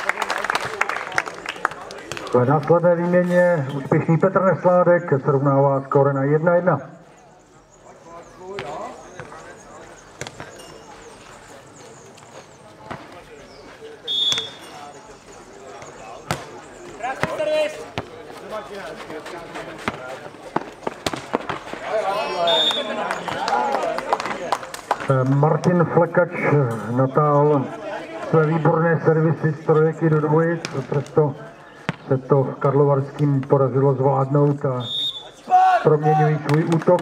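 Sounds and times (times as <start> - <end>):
players calling out: 0.0 - 37.0
ball kicked and bouncing: 8.5 - 9.4, 10.2 - 10.6, 12.8 - 13.2, 15.8 - 18.2, 19.7 - 21.8.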